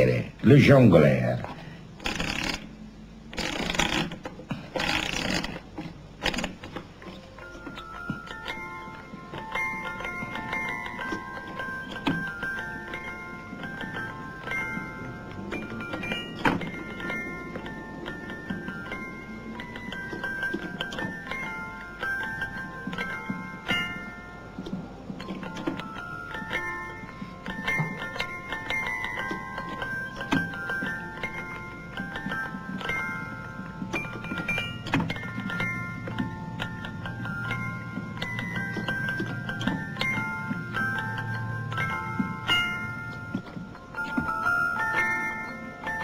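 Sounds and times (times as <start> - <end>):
music box playing a tune: 6.4 - 46.0.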